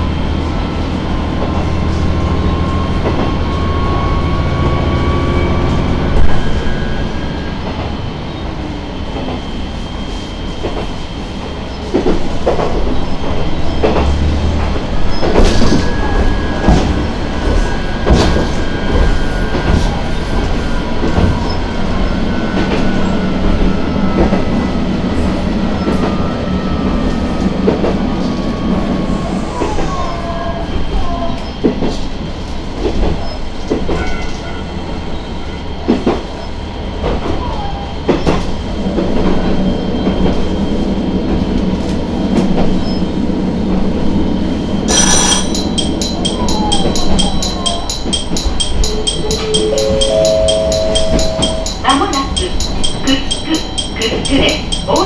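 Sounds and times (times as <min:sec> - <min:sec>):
railcar engine hum: 0:00.0 - 0:55.0
wheels clicking over rail joints: 0:44.9 - 0:55.0.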